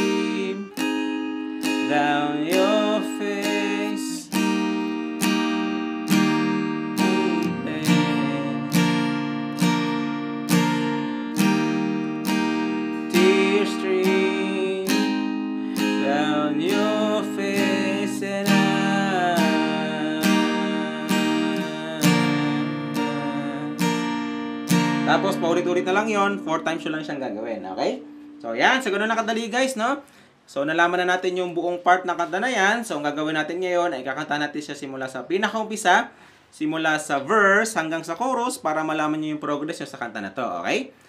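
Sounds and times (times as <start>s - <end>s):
person singing: 0.0s - 4.4s, 6.2s - 9.7s, 12.9s - 27.1s
acoustic guitar strumming: 0.0s - 30.2s.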